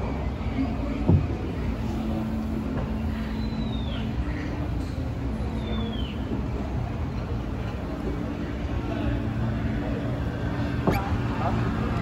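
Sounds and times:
boat rumbling through water: 0.0 - 12.0.

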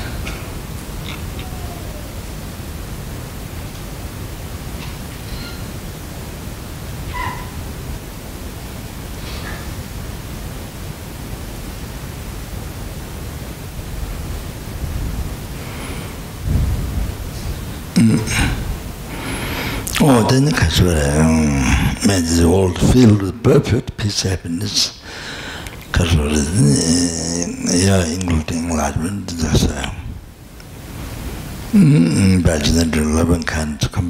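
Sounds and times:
low room rumble: 0.0 - 34.0
faint high-pitched sounds: 0.1 - 3.8.

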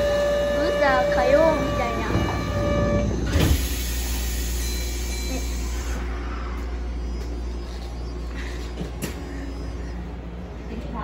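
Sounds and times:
low train hum: 0.0 - 11.0
train doors sliding shut: 1.6 - 4.7.

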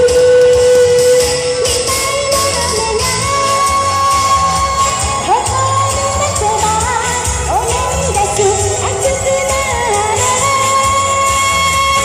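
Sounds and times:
pop band over loudspeakers: 0.0 - 12.0.

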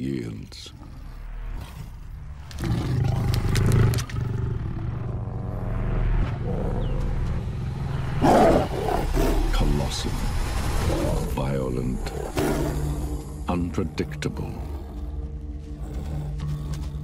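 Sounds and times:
lion growling: 0.3 - 17.0
lion snarling: 0.6 - 5.8, 8.2 - 9.8, 12.0 - 13.2, 14.2 - 17.0.

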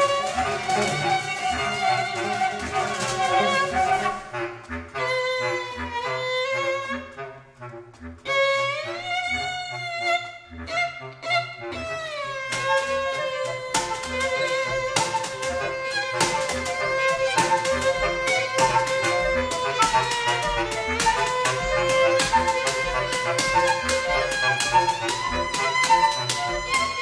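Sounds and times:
chamber ensemble improvising: 0.0 - 27.0.

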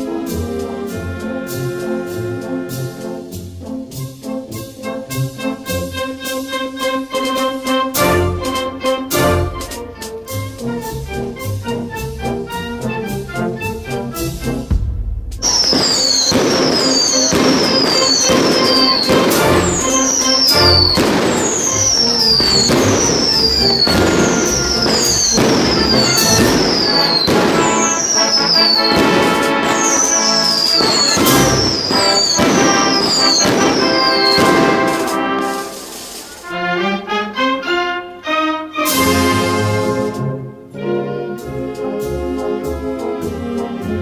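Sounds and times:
firework bangs: 14.4 - 36.4
whistling fireworks: 15.4 - 36.4.

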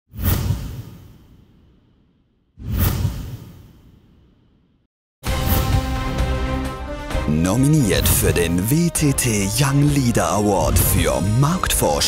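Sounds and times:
whoosh sound effects: 2.6 - 4.0.

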